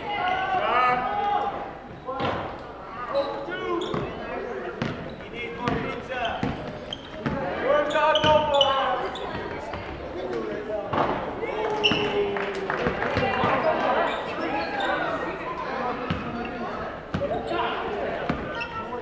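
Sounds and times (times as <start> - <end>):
basketball bouncing on hardwood floor: 5.6 - 7.4.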